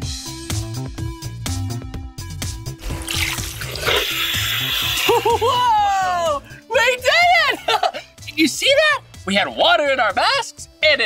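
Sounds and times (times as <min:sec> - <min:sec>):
upbeat background music: 0:00.0 - 0:11.0
rushing water: 0:02.8 - 0:05.0
excited vocal whoops: 0:05.0 - 0:06.5.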